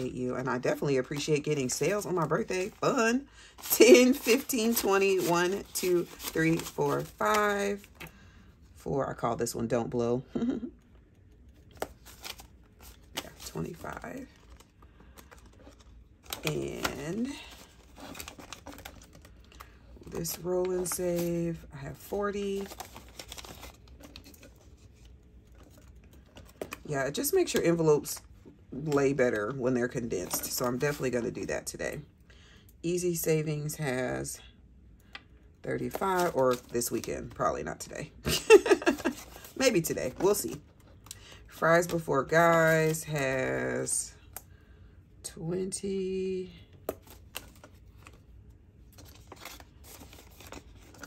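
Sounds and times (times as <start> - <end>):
paper banknotes rustling: 0.8 - 8.1, 11.7 - 27.8, 38.3 - 40.6, 49.0 - 51.0.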